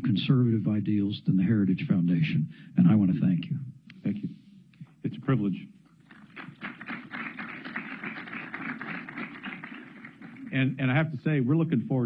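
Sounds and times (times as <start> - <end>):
audience applauding: 6.1 - 10.7.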